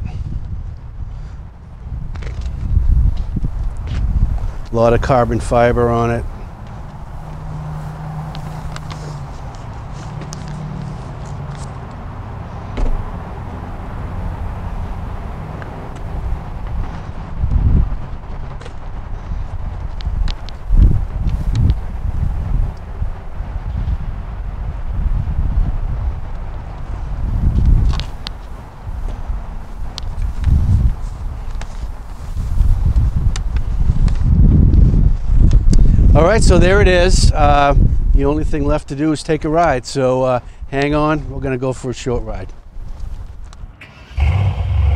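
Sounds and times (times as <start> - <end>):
wind buffeting microphone: 0.0 - 39.0, 42.2 - 44.9
footsteps: 6.5 - 11.8.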